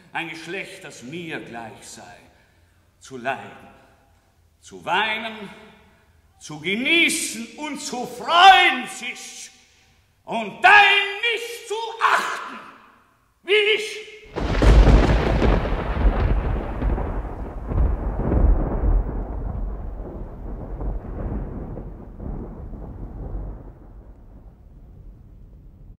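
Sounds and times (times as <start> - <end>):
thunder rolling: 14.3 - 26.0.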